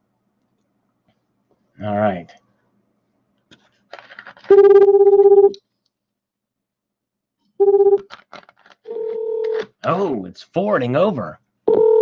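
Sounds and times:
telephone ring tone: 4.5 - 5.6, 7.6 - 8.0, 8.9 - 9.6, 11.7 - 12.0.

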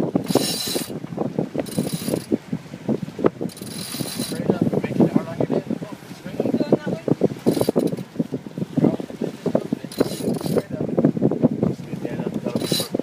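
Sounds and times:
winch clicking and rattling: 0.2 - 1.0, 1.6 - 2.4, 3.5 - 4.5, 7.4 - 8.1, 9.9 - 10.7, 12.3 - 13.0.

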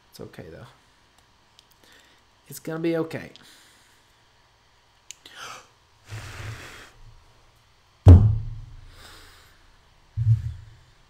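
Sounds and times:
rustling noise: 10.2 - 10.7.

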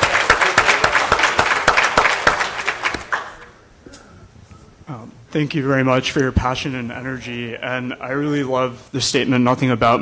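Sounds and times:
audience applauding: 0.0 - 3.6.

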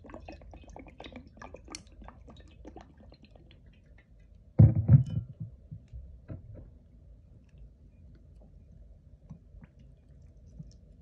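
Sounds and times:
glass bottle thumping on table: 4.6 - 5.5.

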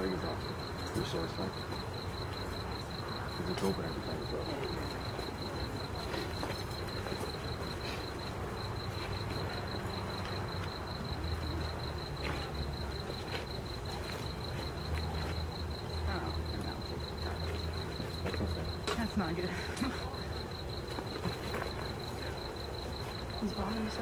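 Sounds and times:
crickets chirping: 0.0 - 24.0.

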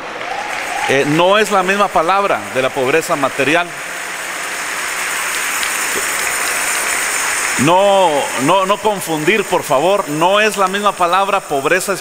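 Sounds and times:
congregation applauding: 0.0 - 11.5.

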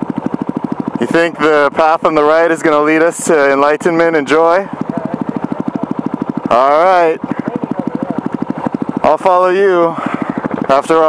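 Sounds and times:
motorcycle engine idling: 0.0 - 11.0.

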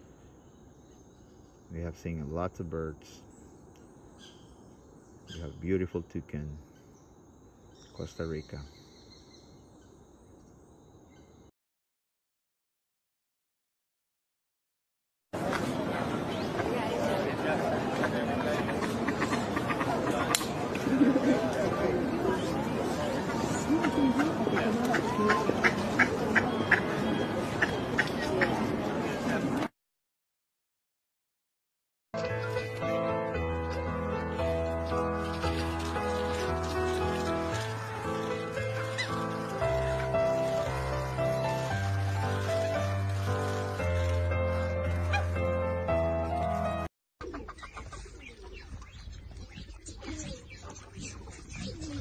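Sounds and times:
ducks making sharp calls: 17.8 - 20.5, 23.2 - 28.7
low cooing bird calls: 47.2 - 52.0
high bird chirps: 47.3 - 52.0.

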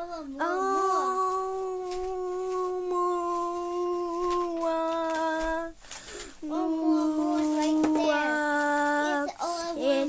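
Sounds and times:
child singing long note: 0.0 - 5.7, 6.4 - 10.0.

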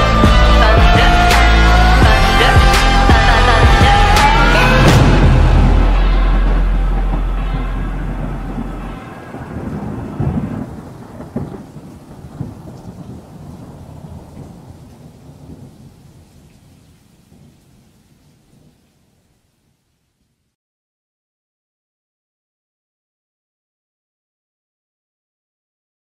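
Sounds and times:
music chord: 0.0 - 10.9
thunder rumbling: 0.0 - 18.8
thunder cracks: 0.2 - 16.5
rain: 0.6 - 20.6.

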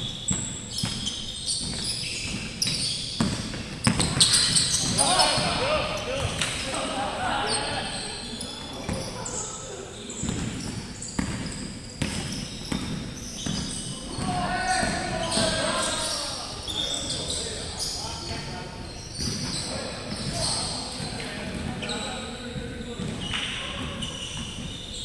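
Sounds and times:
shoes squeaking: 0.0 - 25.0
people shouting: 4.8 - 7.8, 14.1 - 16.4.

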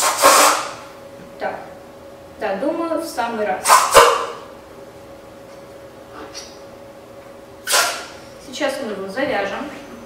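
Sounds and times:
air hissing out of balloon: 0.0 - 0.9, 3.6 - 4.2, 7.6 - 8.2.

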